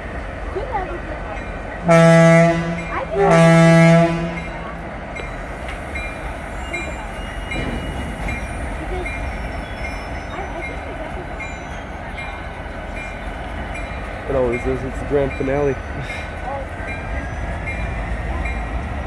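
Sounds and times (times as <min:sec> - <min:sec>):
freight train rumbling past: 0:00.0 - 0:19.0
locomotive air horn blast: 0:01.8 - 0:04.4.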